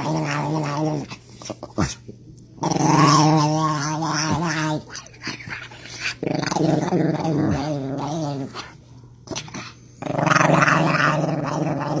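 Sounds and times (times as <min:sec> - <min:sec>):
small dog growling: 0:00.0 - 0:02.0, 0:02.6 - 0:12.0.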